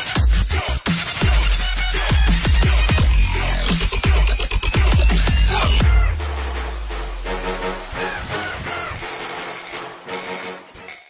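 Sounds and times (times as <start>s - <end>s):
electronic music: 0.0s - 11.0s.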